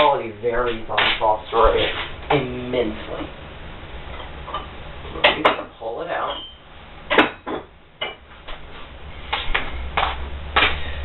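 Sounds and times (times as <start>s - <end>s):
glass dishes knocking and clinking: 7.1s - 8.2s.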